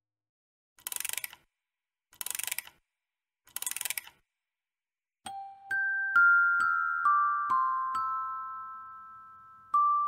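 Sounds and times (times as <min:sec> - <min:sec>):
music box ratchet clicks: 0:00.8 - 0:01.5, 0:02.2 - 0:02.8, 0:03.5 - 0:04.2
music box bell-like notes: 0:05.3 - 0:10.0.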